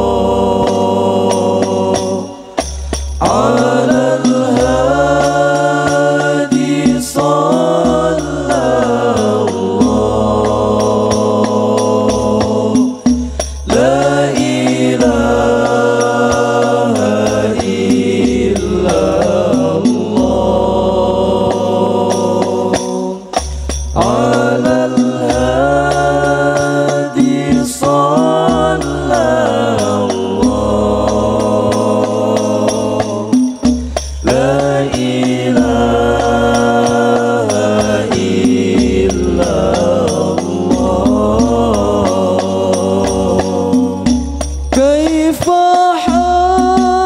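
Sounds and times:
frame drums beating: 0:00.0 - 0:47.0
male voices chanting through microphones: 0:00.0 - 0:47.0
men singing in unison: 0:00.0 - 0:47.0.

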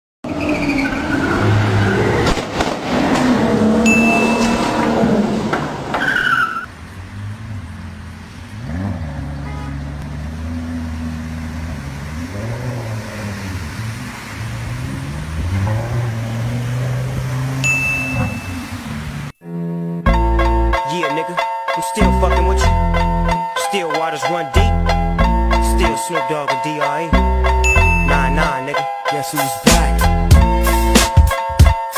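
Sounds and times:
car engine revving through water: 0:01.0 - 0:05.9, 0:06.7 - 0:19.4
short high tone: 0:03.8 - 0:04.8.

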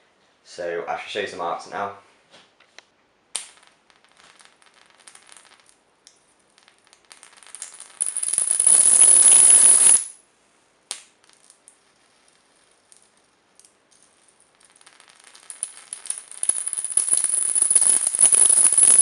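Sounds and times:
electric arc crackling: 0:07.6 - 0:10.1, 0:14.8 - 0:19.0
electric snap: 0:17.5 - 0:19.0.

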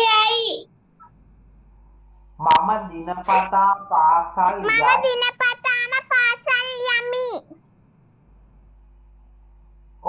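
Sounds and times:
child speaking: 0:00.0 - 0:00.7, 0:04.4 - 0:07.6.

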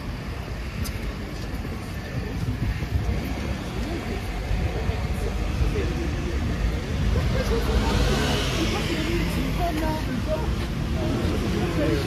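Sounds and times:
city street low rumble: 0:00.0 - 0:12.0
people talking: 0:00.4 - 0:12.0.

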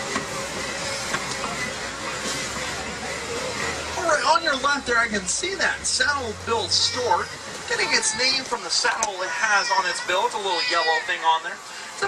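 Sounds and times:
truck engine running: 0:00.0 - 0:09.0
road rumble: 0:00.0 - 0:12.0.

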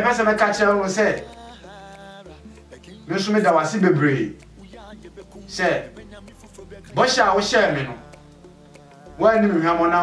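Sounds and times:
faint background music: 0:00.0 - 0:10.0.

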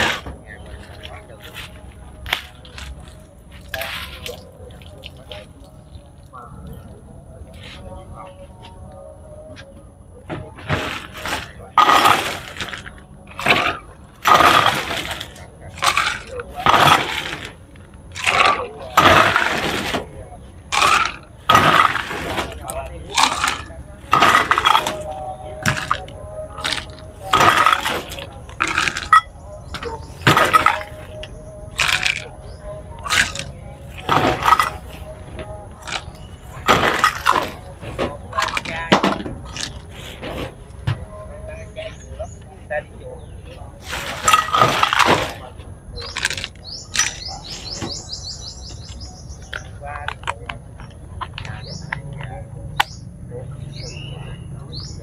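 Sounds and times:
background voices: 0:00.0 - 0:55.0.

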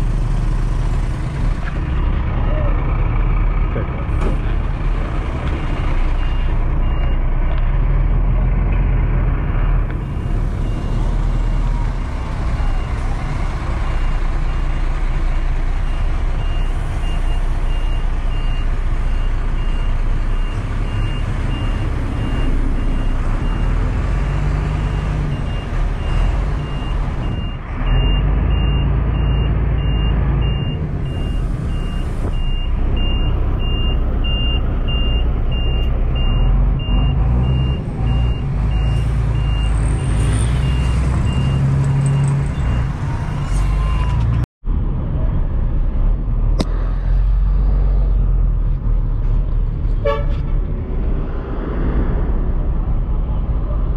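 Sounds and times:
large bus engine running: 0:00.0 - 0:53.9
reversing alarm beeping: 0:24.8 - 0:44.2.

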